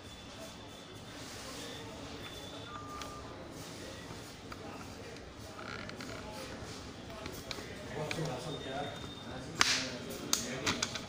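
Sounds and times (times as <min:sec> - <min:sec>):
faint background voices: 0:00.0 - 0:11.0
sharp snap: 0:09.6 - 0:10.5.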